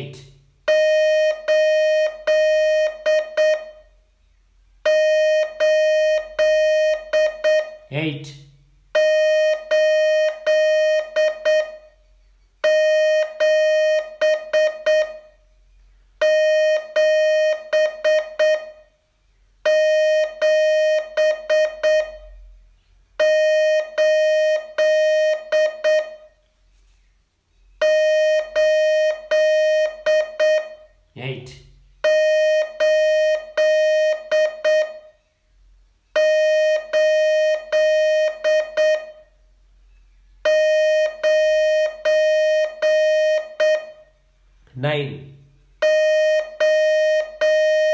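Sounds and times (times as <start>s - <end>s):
morse code beeping: 0.7s - 4.0s, 4.8s - 8.3s, 8.9s - 15.4s, 16.2s - 18.9s, 19.6s - 22.4s, 23.2s - 26.4s, 27.8s - 31.0s, 32.0s - 35.2s, 36.2s - 39.3s, 40.4s - 44.1s, 45.8s - 47.9s.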